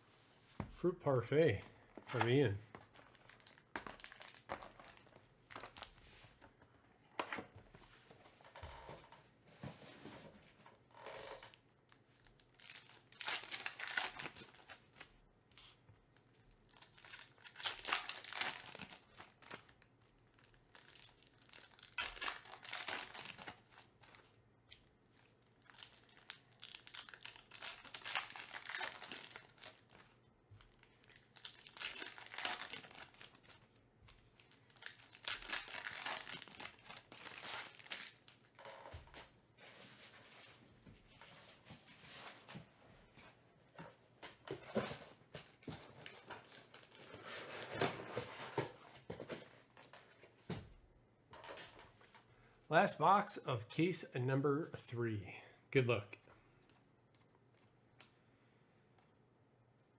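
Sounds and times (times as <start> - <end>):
foil wrappers tearing and crinkling: 2.9 - 5.9, 12.3 - 15.1, 16.7 - 24.2, 25.5 - 33.7, 34.4 - 38.5, 45.9 - 47.9.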